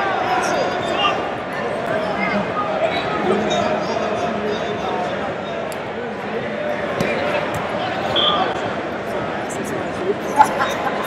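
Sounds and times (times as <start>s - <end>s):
crowd chatter in a large hall: 0.0s - 11.0s.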